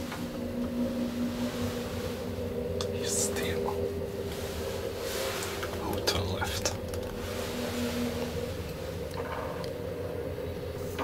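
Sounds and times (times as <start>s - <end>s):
elevator drive hum: 0.0s - 11.0s
whisper-like hiss: 0.9s - 8.8s.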